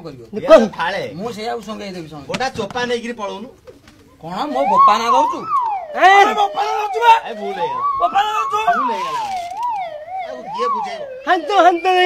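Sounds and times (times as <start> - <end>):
police siren wailing: 4.4 - 12.0.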